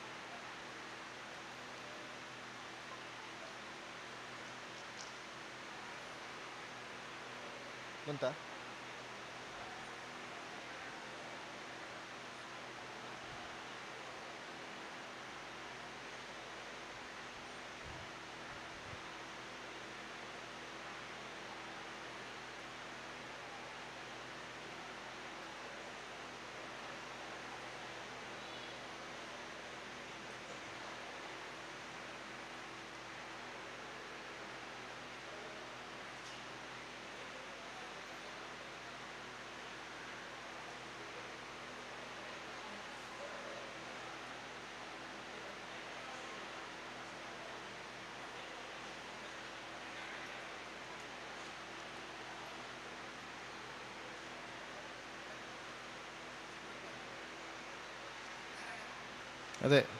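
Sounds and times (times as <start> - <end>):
faint low hum: 0.0 - 59.9.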